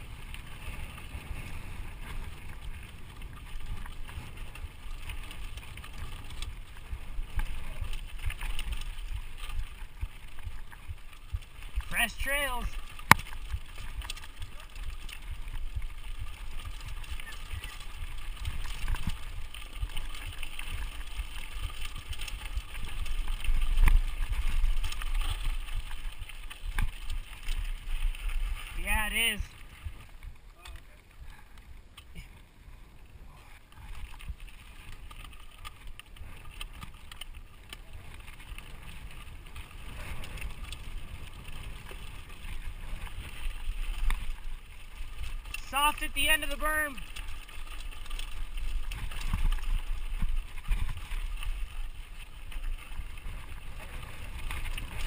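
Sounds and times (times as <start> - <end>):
bike rattling: 0.0 - 55.0
bike tyres rolling over dirt: 0.0 - 55.0.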